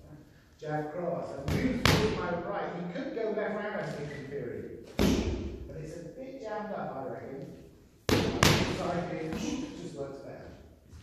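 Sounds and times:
strikes smacking into pads: 0:05.0 - 0:05.5.

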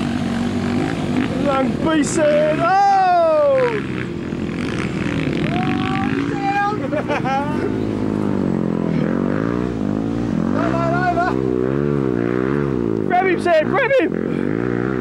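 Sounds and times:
dirt bike engines revving: 0:00.0 - 0:15.0.

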